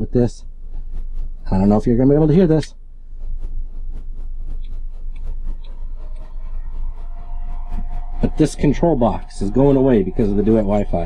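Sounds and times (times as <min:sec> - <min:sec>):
cooling fans humming: 0:00.0 - 0:11.0
faint higher tone: 0:05.6 - 0:11.0.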